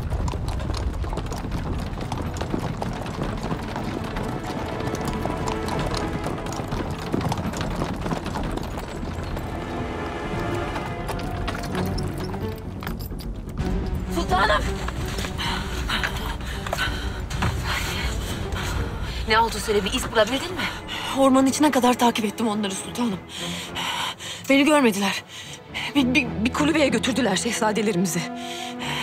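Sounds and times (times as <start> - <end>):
horse hooves galloping: 0.0 - 24.9
background music: 0.0 - 29.0.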